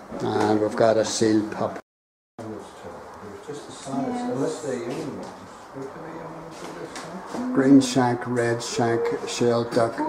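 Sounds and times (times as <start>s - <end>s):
people talking indistinctly: 2.4s - 10.0s.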